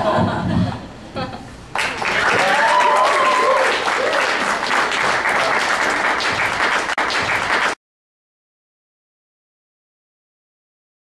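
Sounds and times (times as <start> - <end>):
audience applauding: 1.7 - 7.8
crowd cheering: 1.8 - 7.8.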